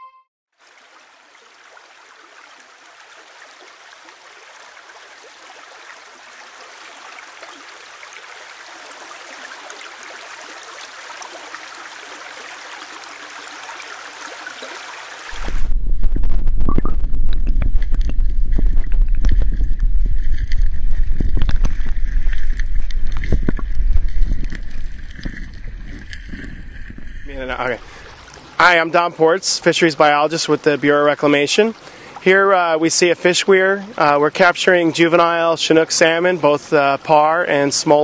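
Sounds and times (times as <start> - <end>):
churning splashing water: 17.4 - 38.0.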